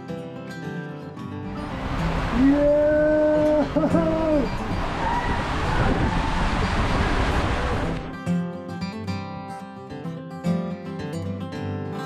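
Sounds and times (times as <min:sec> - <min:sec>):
acoustic guitar music: 0:00.0 - 0:12.0
water rushing down slide tube: 0:01.5 - 0:08.1
person whooping: 0:02.4 - 0:06.4.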